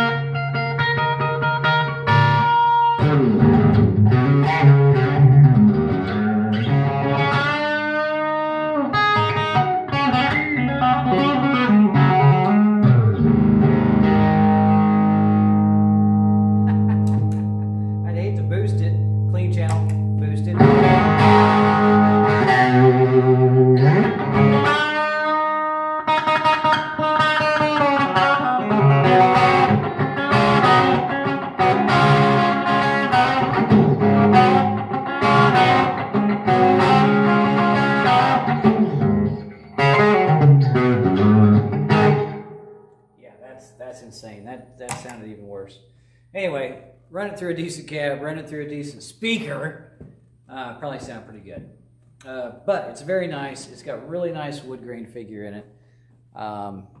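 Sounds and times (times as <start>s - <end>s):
electric guitar through amplifier: 0.0s - 43.0s.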